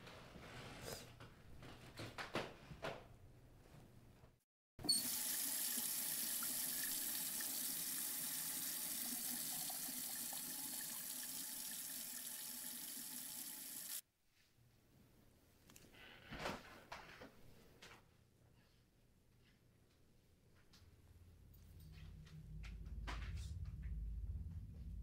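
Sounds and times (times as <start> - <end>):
tap water running into sink: 4.8 - 14.0.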